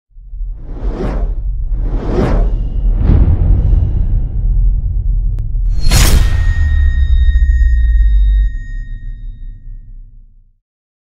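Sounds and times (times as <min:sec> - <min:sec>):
deep low rumble: 0:00.1 - 0:10.6
cinematic whoosh: 0:00.2 - 0:10.0.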